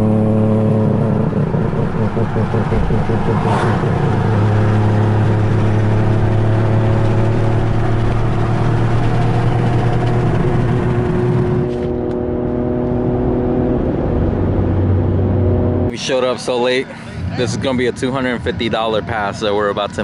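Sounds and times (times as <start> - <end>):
car engine drone: 0.0 - 20.0.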